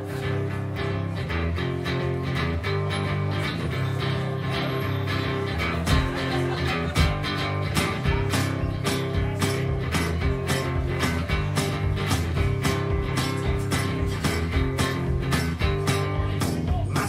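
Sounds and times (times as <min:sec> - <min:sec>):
strummed acoustic guitar: 0:00.0 - 0:17.0.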